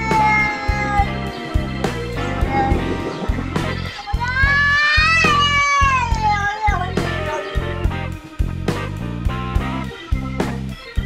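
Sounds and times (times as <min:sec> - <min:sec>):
cat meowing: 0:00.0 - 0:07.6
background music with beat: 0:00.0 - 0:11.0.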